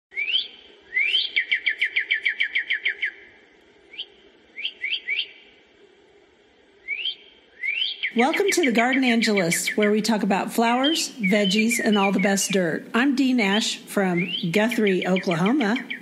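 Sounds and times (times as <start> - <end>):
songbird singing: 0.1 - 5.9, 6.8 - 16.0.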